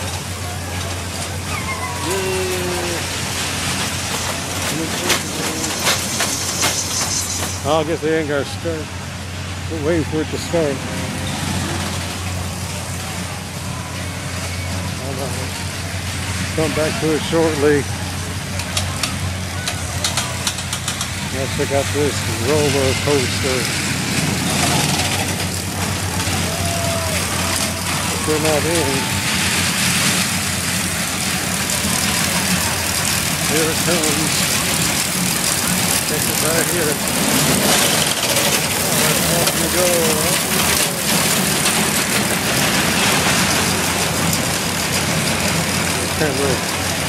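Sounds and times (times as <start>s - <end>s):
midway crowd noise: 0.0s - 47.0s
ride machinery engine hum: 0.0s - 47.0s
wash of noise: 19.2s - 47.0s.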